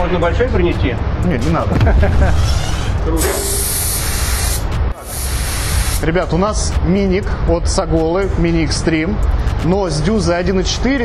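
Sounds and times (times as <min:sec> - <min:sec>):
spray gun hissing: 0:03.2 - 0:06.0.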